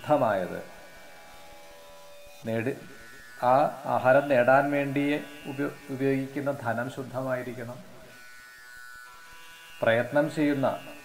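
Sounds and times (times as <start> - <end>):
faint steady buzz: 0.0 - 11.0
man talking: 2.4 - 7.9, 9.8 - 11.0.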